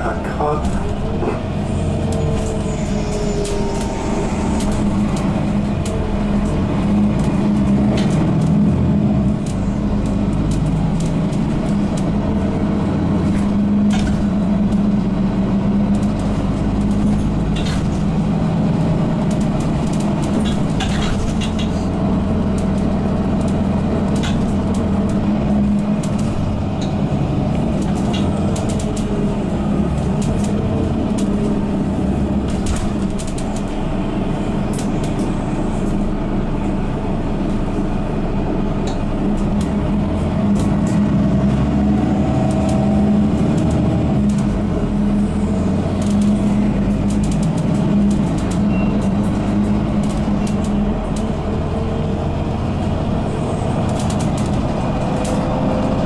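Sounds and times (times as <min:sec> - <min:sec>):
bus engine hum: 0:00.0 - 0:56.0
road rumble: 0:00.0 - 0:56.0
light rattles and clicks: 0:09.2 - 0:33.9, 0:42.4 - 0:56.0.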